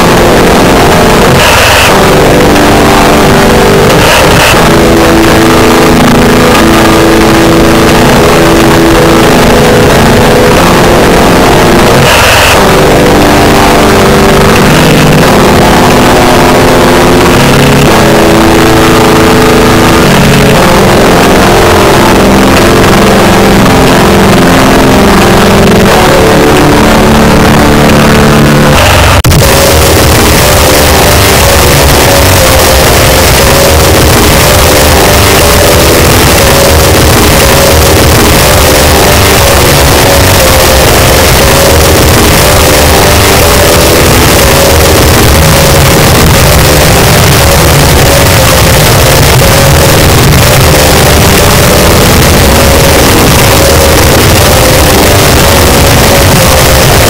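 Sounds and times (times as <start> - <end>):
fast drums: 0.0 - 57.0
heavily distorted guitars: 0.0 - 57.0.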